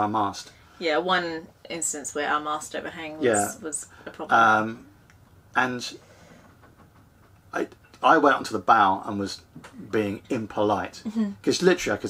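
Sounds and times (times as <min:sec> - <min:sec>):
man speaking: 0:03.2 - 0:03.6, 0:04.3 - 0:04.8, 0:05.6 - 0:06.0, 0:07.6 - 0:12.0.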